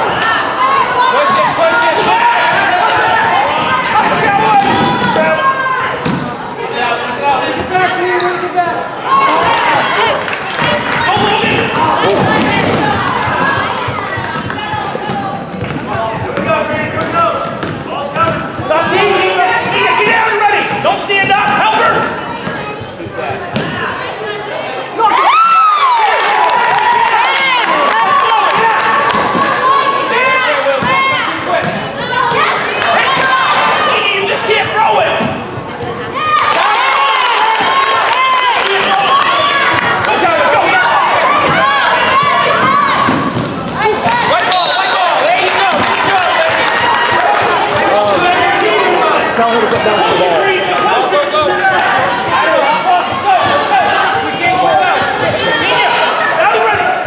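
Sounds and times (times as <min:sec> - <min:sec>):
sneakers squeaking: 0:00.0 - 0:25.2, 0:28.9 - 0:36.4, 0:39.4 - 0:48.6, 0:50.8 - 0:56.8
indistinct voices echoing: 0:00.0 - 0:25.3, 0:26.2 - 0:57.0
basketball bouncing: 0:10.6 - 0:22.9.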